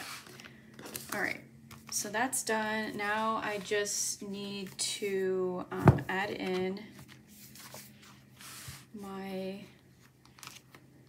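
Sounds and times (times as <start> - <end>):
folio sliding across tabletop: 7.4 - 9.0.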